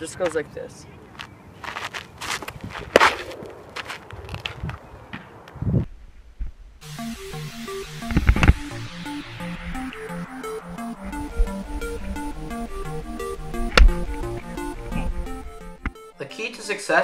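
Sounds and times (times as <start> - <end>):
scuffs on dirt: 1.1 - 5.6
electronic music with steady beat: 6.8 - 17.0.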